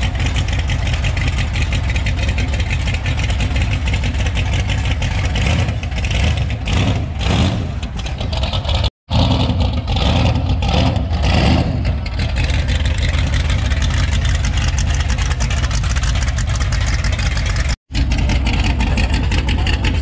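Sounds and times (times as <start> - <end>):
car engine revving through exhaust: 4.5 - 8.0, 9.1 - 14.0.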